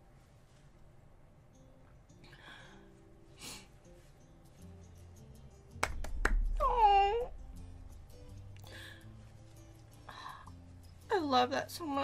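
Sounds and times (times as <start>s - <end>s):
faint music with low notes: 0.0s - 12.0s
hand clap: 5.7s - 6.8s.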